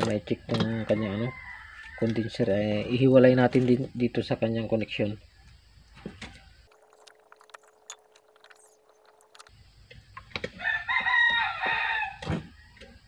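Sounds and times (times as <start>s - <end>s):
rooster crowing: 0.6s - 2.4s, 10.5s - 13.0s.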